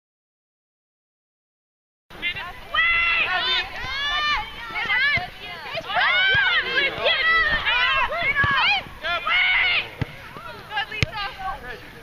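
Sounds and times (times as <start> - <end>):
women shouting and calling out: 2.2 - 11.9.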